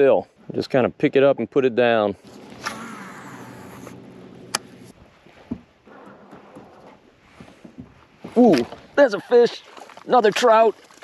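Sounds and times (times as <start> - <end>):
electric boat motor humming: 2.2 - 4.9.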